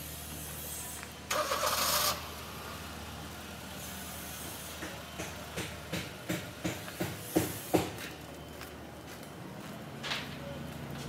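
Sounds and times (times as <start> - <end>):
engine humming: 0.0 - 11.0
short evenly spaced knocks: 4.8 - 8.2.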